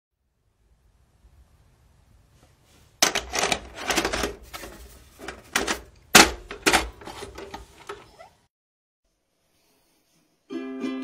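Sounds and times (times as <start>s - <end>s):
cassette mechanism clicks and clunks: 3.0s - 8.1s.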